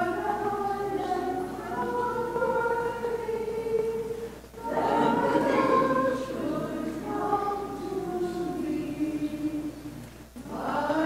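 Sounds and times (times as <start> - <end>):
choir singing a slow hymn: 0.0 - 11.0.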